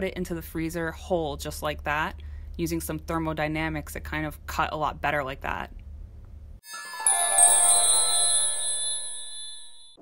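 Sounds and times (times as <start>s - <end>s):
bell-like synthesized chime: 6.6s - 10.0s.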